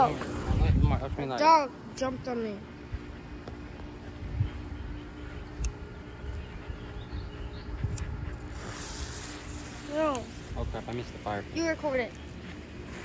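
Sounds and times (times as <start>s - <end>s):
fuse hissing: 8.4s - 12.0s.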